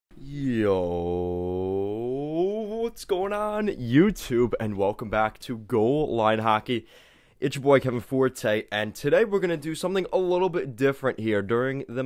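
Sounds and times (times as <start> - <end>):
man holding long low vowel: 0.2 - 3.0.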